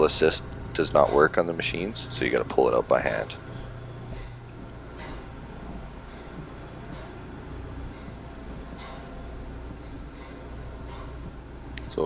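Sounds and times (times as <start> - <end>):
low machinery drone: 0.0 - 12.0
faint footsteps: 3.1 - 12.0.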